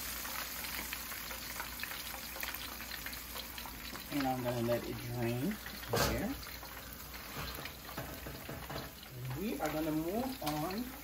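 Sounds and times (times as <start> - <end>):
frying oil sizzling and crackling: 0.0 - 11.0.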